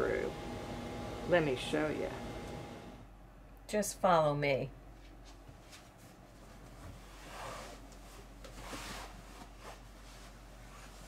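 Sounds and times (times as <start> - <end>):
rustling and shuffling: 4.9 - 11.0.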